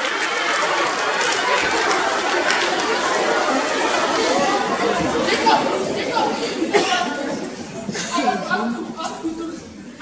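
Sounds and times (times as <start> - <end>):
overlapping chatter of voices: 0.0 - 10.0.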